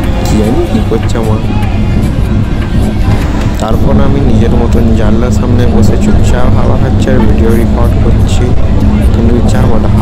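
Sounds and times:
train rumbling: 0.0s - 10.0s
wind buffeting microphone: 0.0s - 10.0s.

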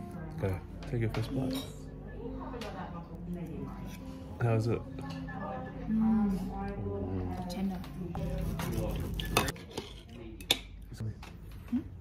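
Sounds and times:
knife and fork scraping a plate: 8.2s - 10.2s.

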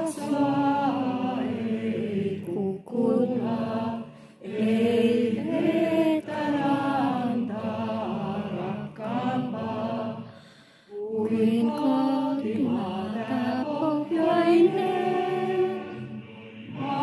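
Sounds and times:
group of people singing: 0.0s - 17.0s.

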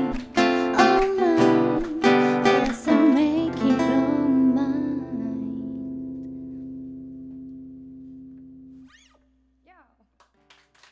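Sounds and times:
strummed acoustic guitar chord: 0.0s - 8.8s.

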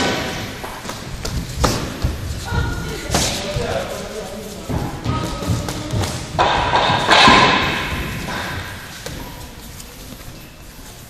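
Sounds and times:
thuds of feet and strikes on mat: 0.0s - 3.5s.

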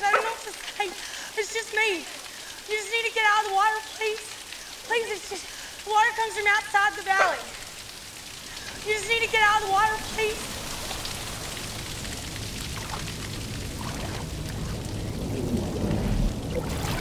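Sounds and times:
waterfall pouring into a pool: 0.0s - 17.0s.

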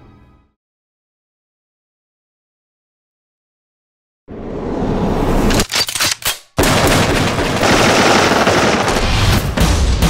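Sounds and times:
rapid automatic gunfire: 6.6s - 9.6s.

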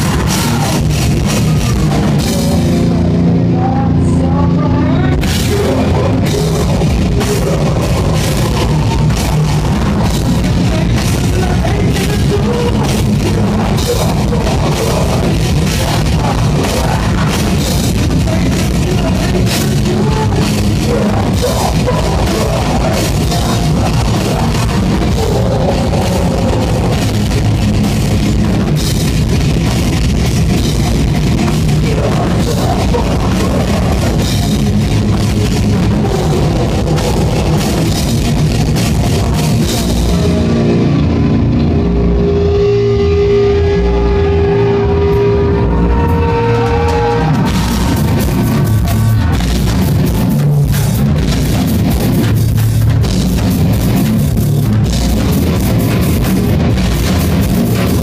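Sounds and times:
heavy metal band playing: 0.0s - 58.0s.

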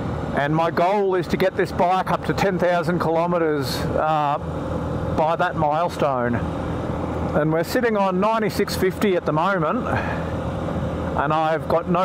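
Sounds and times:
motorcycle engine running: 0.0s - 12.0s
man talking: 0.4s - 4.5s, 5.2s - 6.5s, 7.3s - 10.2s, 11.2s - 12.0s.

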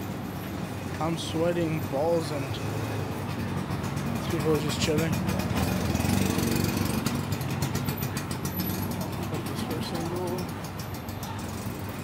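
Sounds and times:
motor scooter engine: 0.0s - 12.0s.

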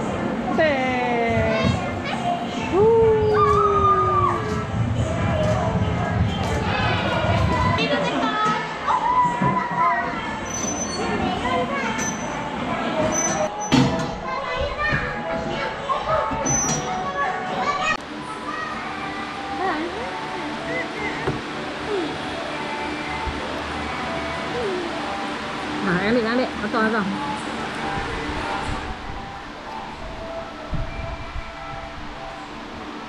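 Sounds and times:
children calling and chattering: 1.2s - 25.8s
children's voices: 1.3s - 12.0s.

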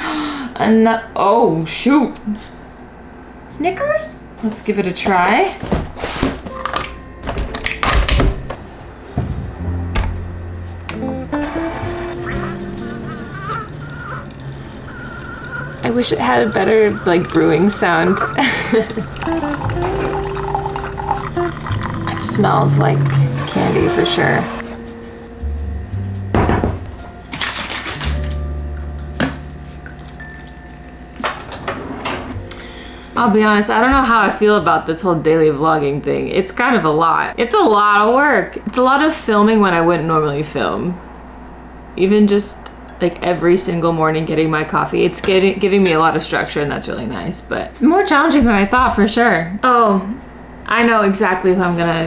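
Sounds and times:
background music: 6.5s - 31.3s
coffee maker humming: 11.0s - 24.6s.

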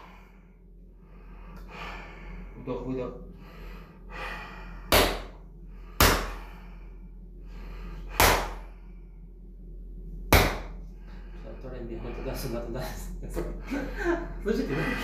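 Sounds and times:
breathing: 0.0s - 2.6s, 3.2s - 9.4s, 10.8s - 12.5s.

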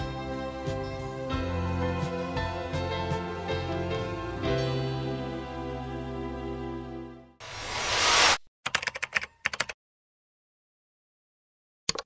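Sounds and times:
whoosh: 7.4s - 8.5s
keyboard typing clicks: 8.7s - 9.8s.

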